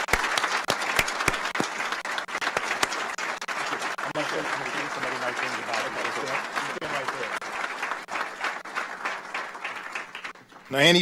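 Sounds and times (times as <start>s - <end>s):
audience applauding: 0.0s - 11.0s
man talking into microphone: 10.7s - 11.0s.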